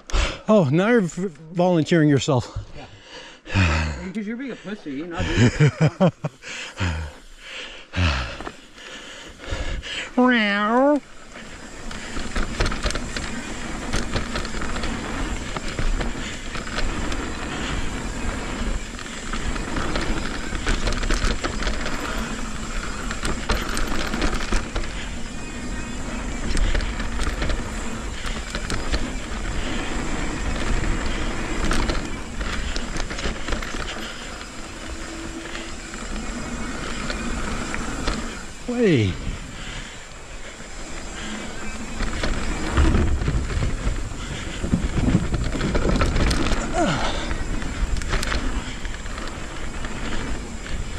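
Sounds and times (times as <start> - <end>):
bike chain and frame rattling: 5.0 - 50.9
tyre rumble on dirt: 41.2 - 50.9
wind noise on microphone: 41.9 - 50.9.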